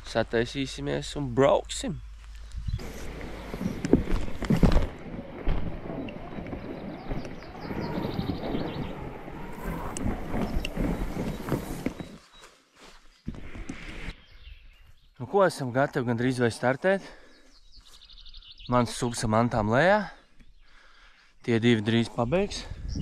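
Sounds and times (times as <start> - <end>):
board scraping over grass: 2.4 - 14.4.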